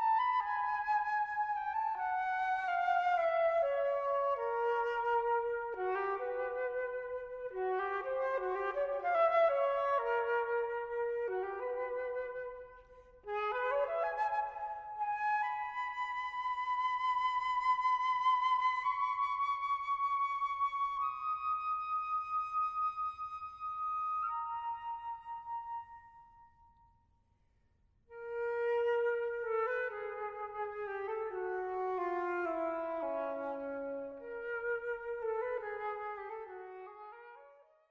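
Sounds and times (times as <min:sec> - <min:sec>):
flute music: 0:00.0 - 0:26.9, 0:28.1 - 0:37.9.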